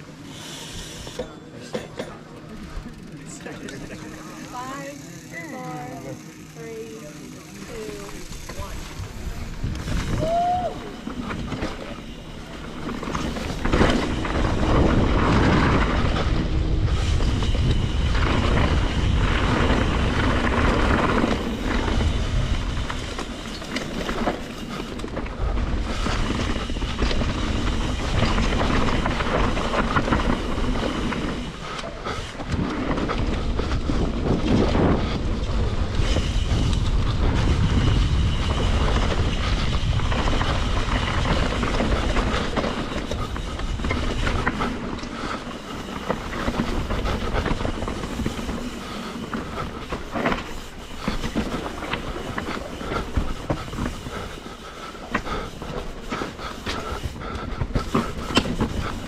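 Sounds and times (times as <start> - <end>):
bike rattling over bumps: 0.0 - 59.0
bike tyres on loose stones: 0.0 - 59.0
wind rumbling on microphone: 7.7 - 59.0.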